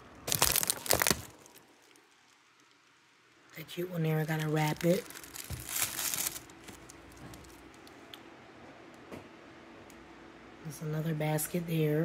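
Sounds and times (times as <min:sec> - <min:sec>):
cellophane wrap crackling: 0:00.0 - 0:08.0.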